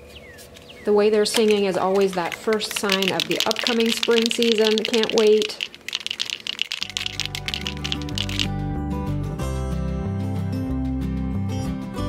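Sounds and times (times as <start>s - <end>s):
spray can ball rattling: 1.3s - 8.6s
background music: 6.9s - 12.0s.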